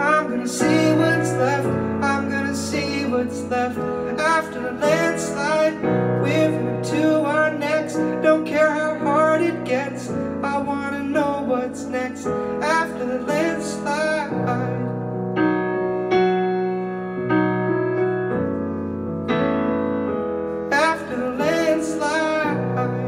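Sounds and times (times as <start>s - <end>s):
man singing: 0.0s - 15.2s, 20.6s - 23.0s
piano chords: 0.0s - 23.0s.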